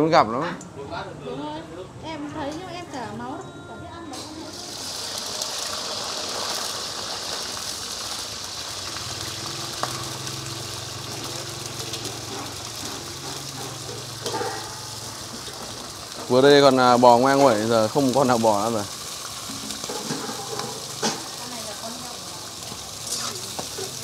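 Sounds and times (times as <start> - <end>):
grubs sizzling in hot oil: 4.2 - 24.0.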